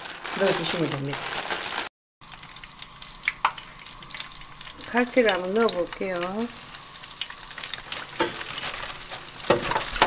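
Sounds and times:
frying oil hissing: 0:02.2 - 0:10.0.

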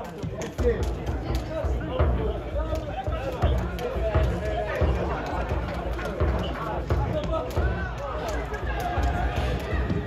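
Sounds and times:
players shouting: 0:00.2 - 0:10.0.

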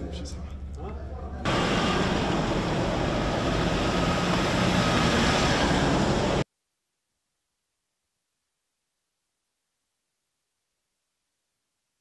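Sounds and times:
vehicles running nearby: 0:00.6 - 0:06.4.

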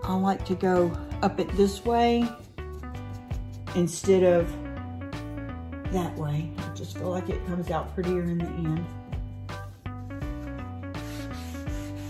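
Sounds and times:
background music: 0:00.0 - 0:12.0
cloth pad rubbing on wood: 0:09.7 - 0:12.0.

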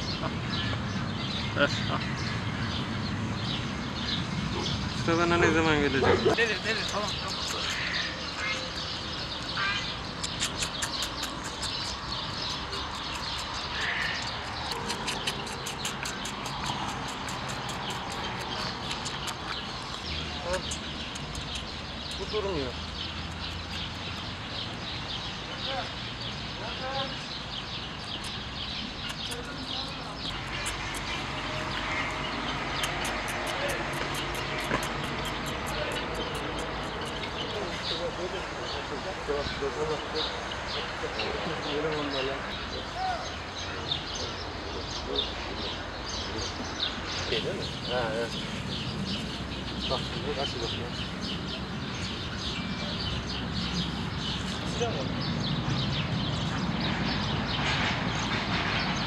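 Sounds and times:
small birds chirping: 0:00.0 - 0:59.0.

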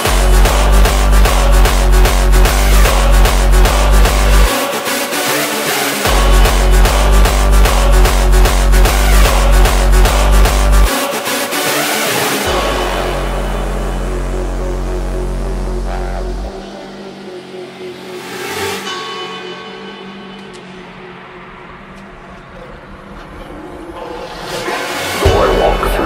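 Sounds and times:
hard dance music: 0:00.0 - 0:21.9, 0:23.9 - 0:26.0
sustained synth chords: 0:00.0 - 0:26.0
deep bass note: 0:12.5 - 0:17.1, 0:25.2 - 0:26.0
noise sweep: 0:23.6 - 0:26.0.

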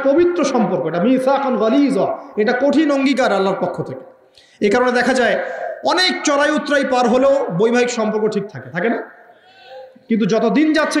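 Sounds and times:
man preaching into microphone: 0:00.0 - 0:11.0.

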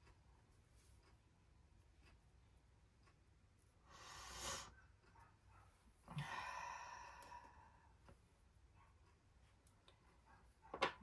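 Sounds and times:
breathy exhale: 0:06.1 - 0:07.8
voiced sigh: 0:06.1 - 0:07.8.

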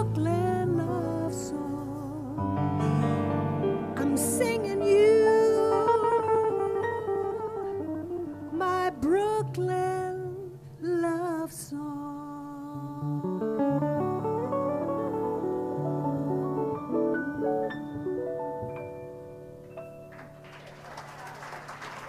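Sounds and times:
woman singing jazz: 0:00.0 - 0:03.1, 0:03.8 - 0:18.1.

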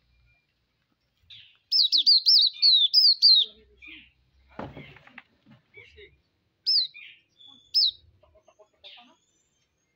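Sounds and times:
bird calling: 0:01.3 - 0:04.2, 0:06.6 - 0:08.1.

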